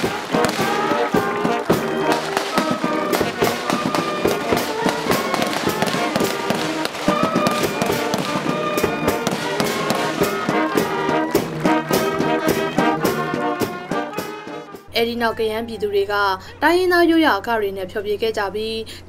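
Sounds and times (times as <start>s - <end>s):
sharp cracks: 0.0s - 10.9s
brass band playing slow tune: 0.0s - 14.9s.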